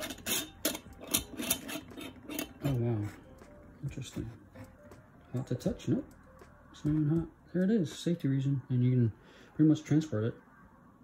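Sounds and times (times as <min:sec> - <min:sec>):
metal screw lid clicking and scraping: 0:00.0 - 0:02.8.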